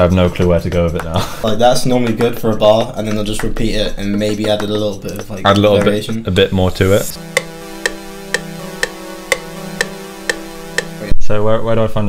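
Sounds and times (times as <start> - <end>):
held synth tone: 7.1 - 11.2
short sharp synth notes: 7.1 - 11.2.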